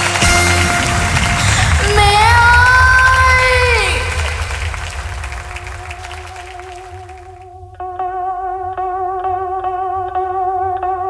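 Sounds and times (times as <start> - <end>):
sustained instrumental accompaniment: 0.0 - 1.6
girl singing long note: 1.4 - 4.7.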